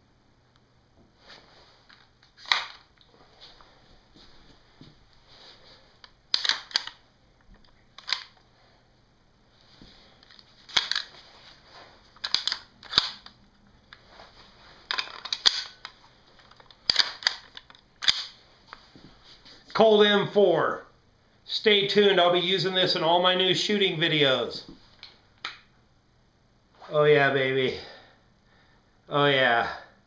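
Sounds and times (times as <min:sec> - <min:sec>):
rifle mechanism clicks: 0:06.3 - 0:07.0, 0:12.2 - 0:13.4, 0:14.9 - 0:18.4.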